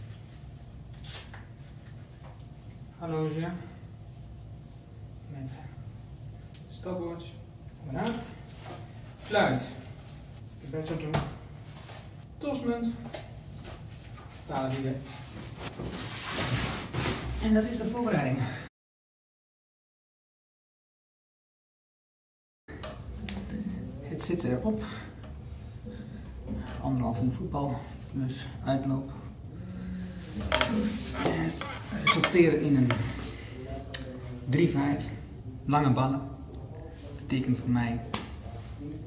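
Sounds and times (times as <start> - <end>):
man speaking: 30.3 - 38.2.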